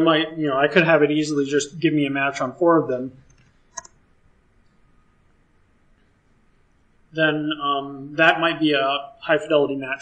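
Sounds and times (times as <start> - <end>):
keyboard typing: 3.2 - 4.0.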